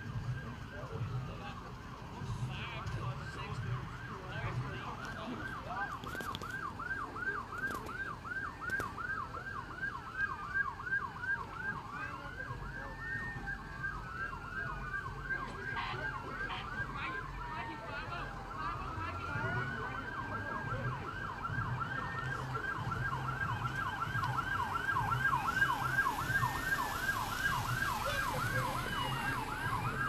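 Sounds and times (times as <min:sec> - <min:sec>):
siren with a slow wail: 0:00.0 - 0:30.0
siren in a fast yelp: 0:03.2 - 0:30.0
faint sharp cracks: 0:08.6 - 0:09.0.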